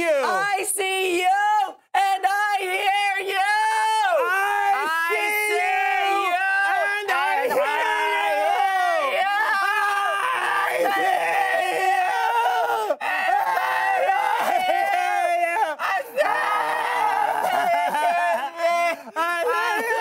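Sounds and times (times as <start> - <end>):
men yelling and wailing: 1.4 - 20.0
man sobbing loudly: 17.0 - 20.0.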